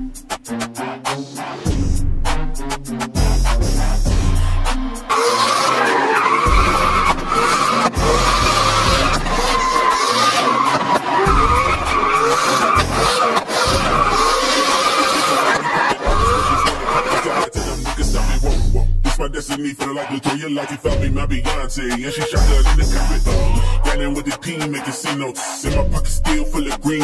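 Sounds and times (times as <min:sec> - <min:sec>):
background music with bass beat: 0:00.0 - 0:27.0
car engine revving: 0:00.8 - 0:20.2
tyres squealing: 0:04.3 - 0:17.6.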